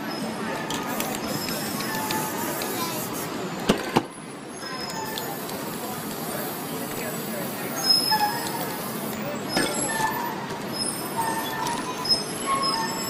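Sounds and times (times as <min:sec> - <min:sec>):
spray paint hissing from can: 0:00.7 - 0:03.5, 0:04.6 - 0:13.0.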